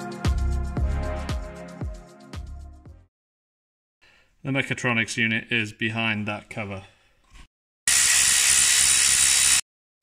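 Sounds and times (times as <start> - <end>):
cordless electric ratchet whirring: 7.9 - 9.6.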